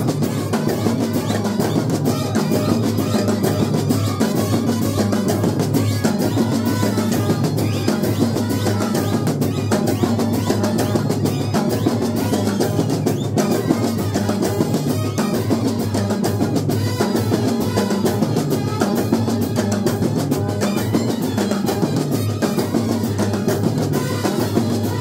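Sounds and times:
fast dense drumming: 0:00.0 - 0:25.0
trumpets and horns playing a tune: 0:00.0 - 0:25.0.

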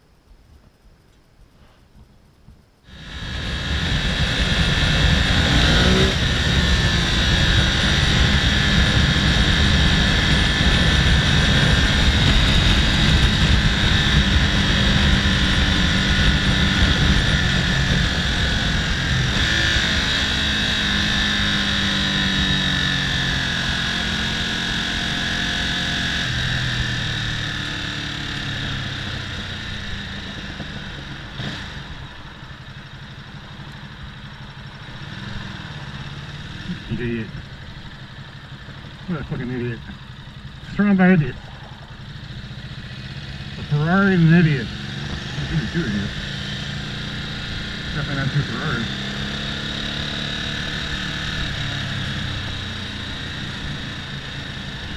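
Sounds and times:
wind rush on microphone: 0:01.9 - 0:19.9
motorcycle engine: 0:02.8 - 0:54.9.

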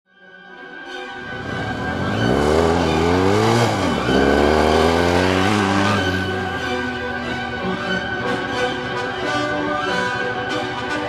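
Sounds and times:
motorcycles accelerating on gravel: 0:01.3 - 0:06.6.

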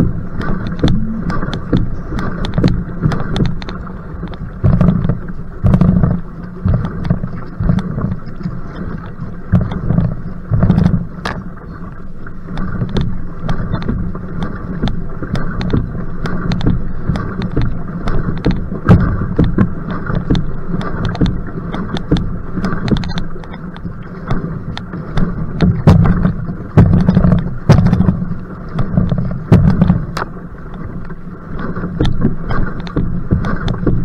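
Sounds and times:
wind buffeting microphone: 0:00.0 - 0:11.7
paddle strokes splashing: 0:00.0 - 0:34.0
water rushing past canoe: 0:00.0 - 0:34.0.

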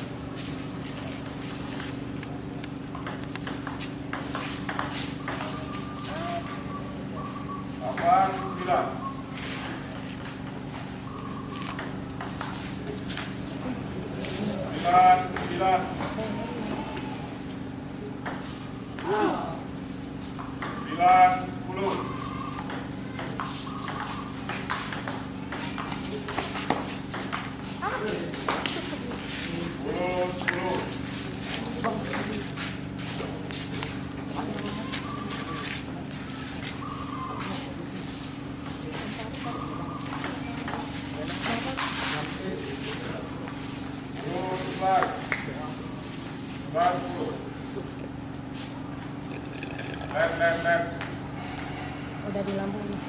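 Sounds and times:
table tennis ball ticking off paddles: 0:02.9 - 0:05.5, 0:22.6 - 0:27.5.

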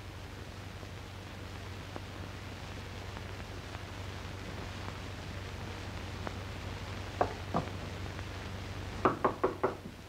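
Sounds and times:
knocks on a door: 0:09.0 - 0:09.9.

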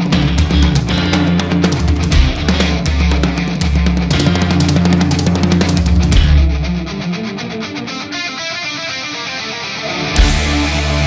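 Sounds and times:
doom metal band playing: 0:00.0 - 0:07.9, 0:09.6 - 0:11.0.

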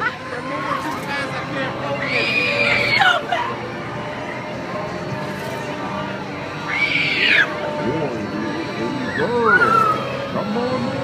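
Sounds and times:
fairground ride din: 0:00.0 - 0:11.0
high-pitched scream: 0:06.6 - 0:07.5, 0:09.0 - 0:10.1.

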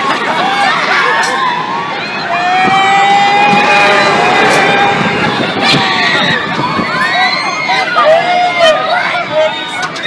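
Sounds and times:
swinging gondola rushing and rattling: 0:00.0 - 0:10.0
riders screaming: 0:00.4 - 0:09.8.

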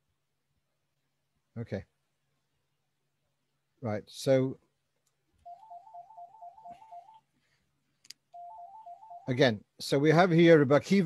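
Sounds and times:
electronic telephone ringer warbling: 0:05.5 - 0:07.2, 0:08.4 - 0:09.4.

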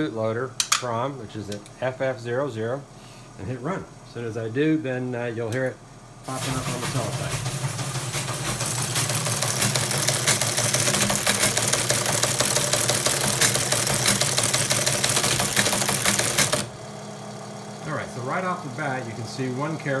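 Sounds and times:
motor hum: 0:05.1 - 0:20.0
teleprinter mechanical clatter: 0:06.3 - 0:16.7.

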